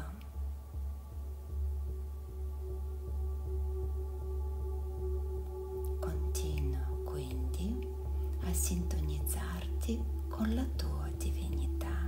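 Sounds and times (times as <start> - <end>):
soft whispery speech: 0.0 - 0.4, 5.9 - 12.0
ambient music drone: 0.0 - 12.0.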